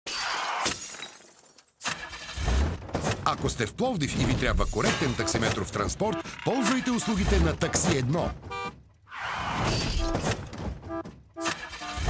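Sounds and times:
glass shattering crash: 0.1s - 2.8s.

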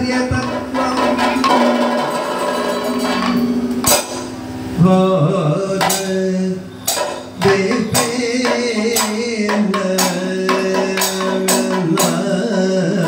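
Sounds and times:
man singing: 0.0s - 1.6s, 4.8s - 13.0s
ringing metal tones: 0.0s - 5.0s, 5.6s - 13.0s
gong cymbal and drum strikes: 0.4s - 4.9s.

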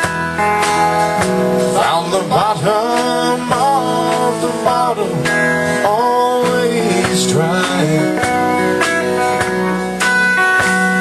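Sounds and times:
bass: 0.0s - 11.0s
drums: 0.0s - 11.0s
guitars with bent gliding notes: 0.0s - 11.0s.

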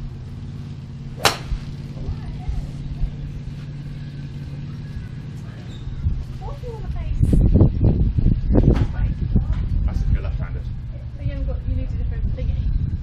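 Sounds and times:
vehicle engine hum: 0.0s - 13.0s
golf club striking ball: 1.0s - 2.1s.

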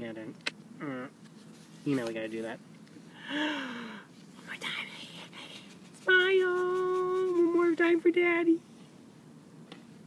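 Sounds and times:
soft whispering: 4.4s - 7.6s.

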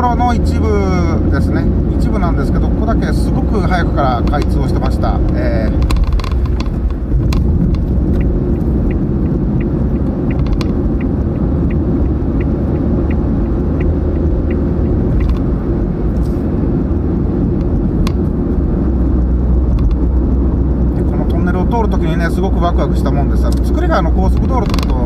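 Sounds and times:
car driving heard from inside: 0.0s - 25.0s
light regular ticking: 1.6s - 16.2s, 16.8s - 25.0s.

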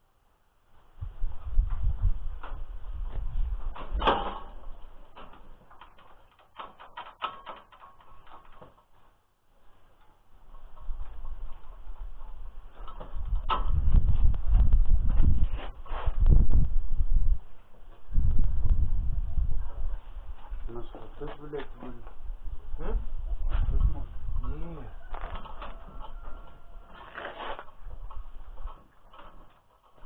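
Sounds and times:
metal knocks and clanks: 3.6s - 8.9s
heavy low rumble: 11.0s - 25.0s.

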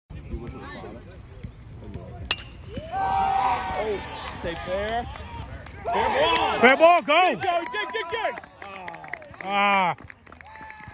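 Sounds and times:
metal bat pinging ball: 2.2s - 2.7s.

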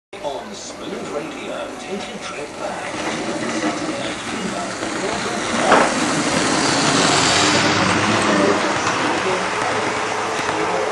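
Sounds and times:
model train running on track: 0.2s - 10.9s.

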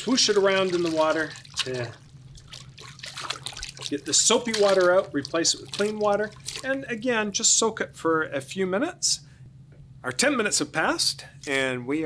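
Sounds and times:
water sloshing in a plastic bin: 0.0s - 7.1s.

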